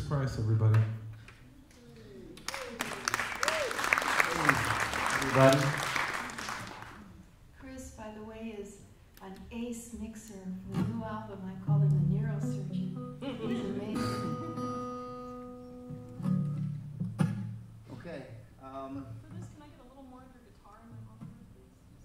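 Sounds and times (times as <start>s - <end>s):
man speaking into a microphone: 5.2s - 5.8s
plucked acoustic guitar notes: 10.7s - 17.8s.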